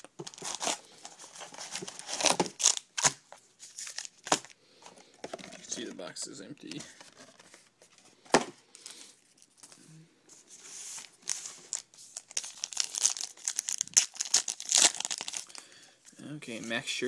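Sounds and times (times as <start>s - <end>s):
foil wrapper tearing and crinkling: 1.6s - 4.5s, 11.2s - 15.6s.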